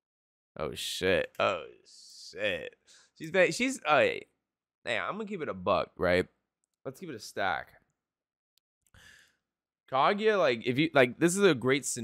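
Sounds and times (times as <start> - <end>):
man breathing into microphone: 9.0 - 9.4.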